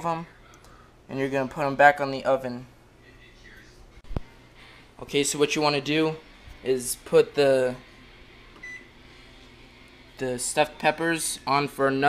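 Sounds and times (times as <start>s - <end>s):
microwave keypad beep: 8.6s - 8.9s.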